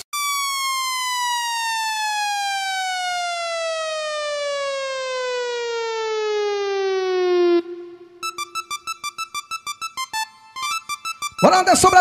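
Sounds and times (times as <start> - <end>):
falling electronic sweep tone: 6.8 - 12.0.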